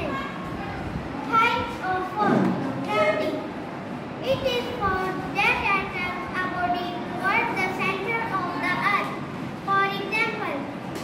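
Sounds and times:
girl speaking: 0.0s - 3.5s, 4.2s - 10.8s
children's voices: 0.0s - 3.6s, 4.2s - 11.0s.

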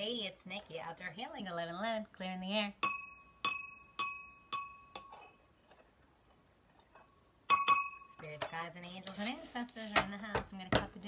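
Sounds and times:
small bell ringing: 2.8s - 5.2s, 7.5s - 8.2s.

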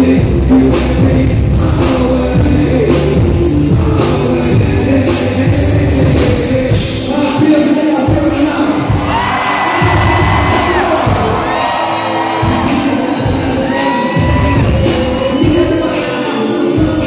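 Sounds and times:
drums: 0.0s - 17.0s
person singing into a microphone: 0.0s - 17.0s.

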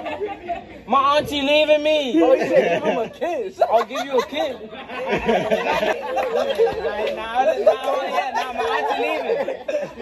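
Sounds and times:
people laughing and chattering: 0.0s - 10.0s.

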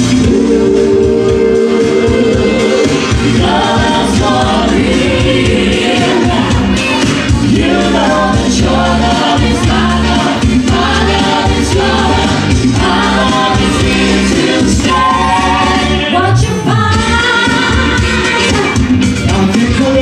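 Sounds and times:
instrumental backing: 0.0s - 20.0s
vocal group singing in harmony: 0.0s - 20.0s.

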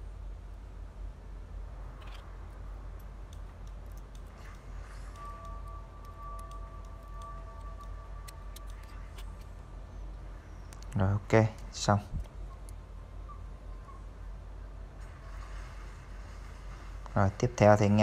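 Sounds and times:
faint steady whine: 0.0s - 18.0s
steady low hum: 0.0s - 18.0s.

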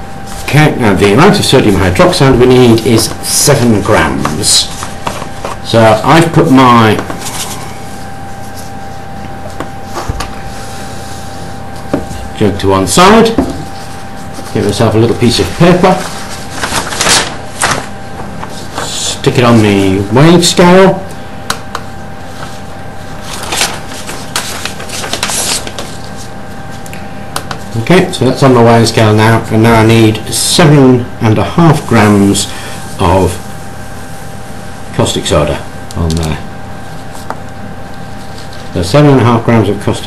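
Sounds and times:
faint high hum: 0.0s - 40.0s
paper rustling: 0.3s - 9.0s, 13.1s - 20.1s, 22.3s - 26.8s, 36.0s - 38.8s.

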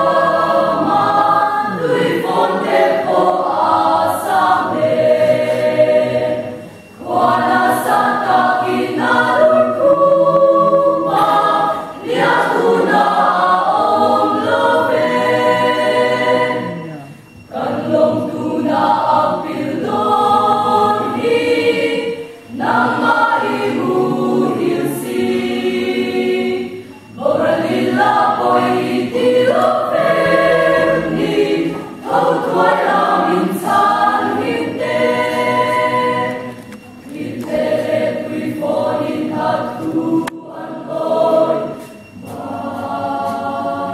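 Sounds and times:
mixed choir singing a hymn: 0.0s - 43.9s.

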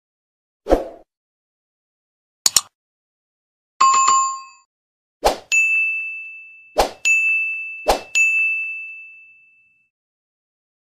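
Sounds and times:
bright ringing ding: 5.6s - 9.9s.

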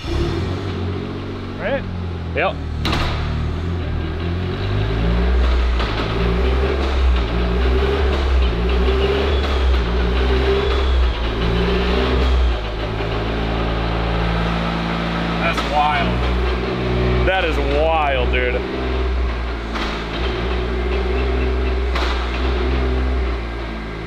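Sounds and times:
car engine revving through gear changes: 0.0s - 24.0s.

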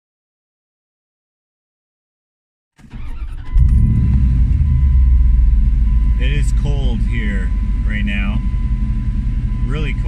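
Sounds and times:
car engine idling: 2.8s - 10.0s.

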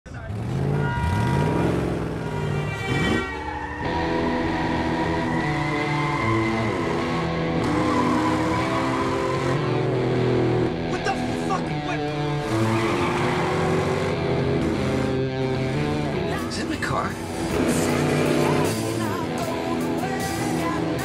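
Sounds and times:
vehicle engines revving: 0.1s - 21.0s.

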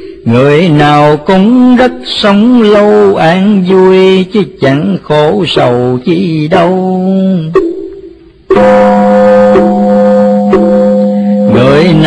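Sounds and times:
man chanting: 0.3s - 7.5s, 11.4s - 12.0s.

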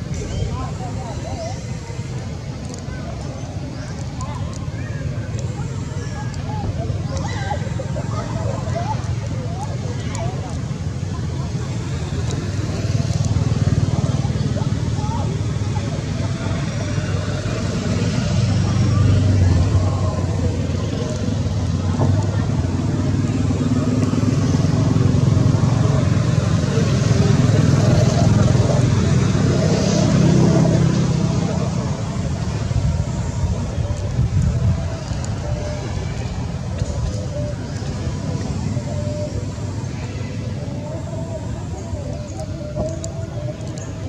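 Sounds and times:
motor vehicles humming: 0.0s - 44.0s
people's voices: 0.0s - 44.0s.

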